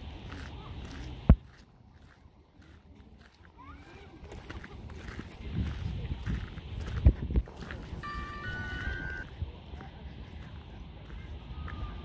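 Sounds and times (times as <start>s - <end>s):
wind on microphone: 4.3s - 12.0s
high-pitched tones: 8.0s - 9.3s.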